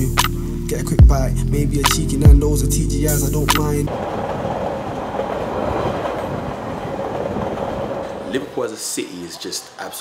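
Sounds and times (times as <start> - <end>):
train wheels rumbling on rail: 3.1 - 9.2.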